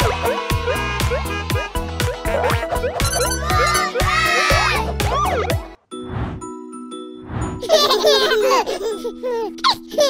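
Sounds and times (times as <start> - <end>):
baby giggling: 7.6 - 10.0.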